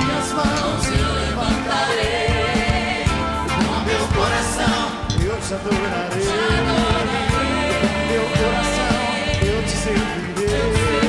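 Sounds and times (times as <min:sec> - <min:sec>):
band with drums and bass: 0:00.0 - 0:11.0
people singing along: 0:00.0 - 0:11.0
man singing into microphone: 0:05.2 - 0:06.4, 0:08.1 - 0:11.0.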